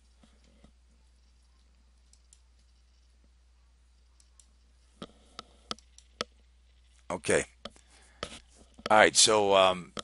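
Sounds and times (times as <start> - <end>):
faint low hum: 0.0 - 10.0
computer mouse clicks: 0.3 - 3.1, 4.0 - 6.4.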